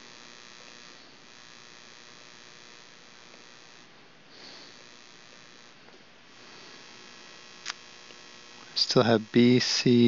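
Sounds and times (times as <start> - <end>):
faint electrical hum and hiss: 0.0 - 10.0.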